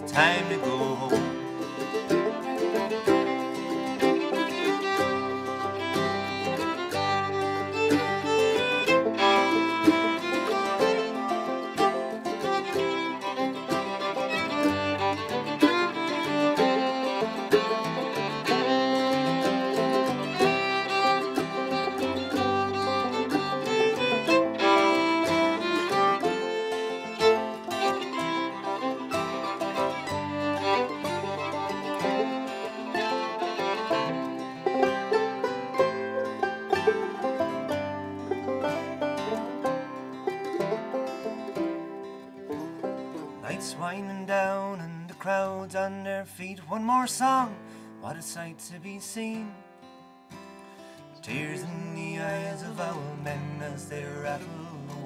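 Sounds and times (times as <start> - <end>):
acoustic guitar: 0.0 - 55.0
banjo: 0.0 - 55.0
fiddle: 0.0 - 55.0
mandolin: 0.0 - 55.0.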